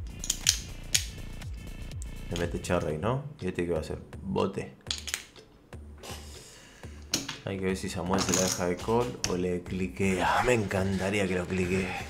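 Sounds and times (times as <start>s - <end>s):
poker chip click: 0.2s - 1.1s.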